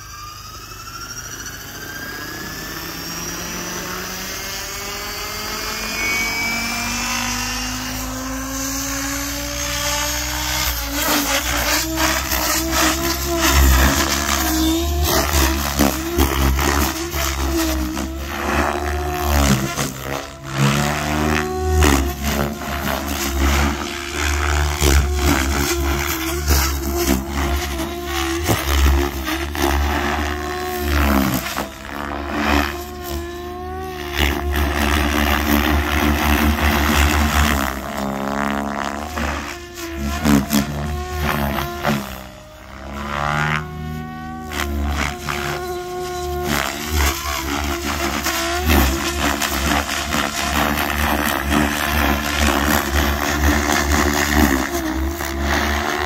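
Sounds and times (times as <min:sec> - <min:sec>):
rc helicopter rotor whine: 0:00.0 - 0:56.0.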